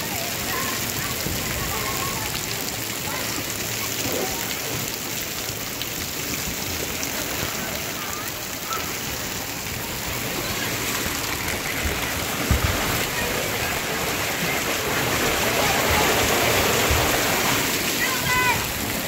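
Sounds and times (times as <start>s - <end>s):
water splashing in slide tube: 0.0s - 19.0s.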